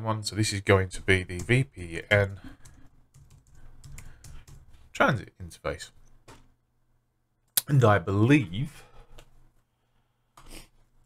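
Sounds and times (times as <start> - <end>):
computer keyboard typing: 1.3 - 4.8.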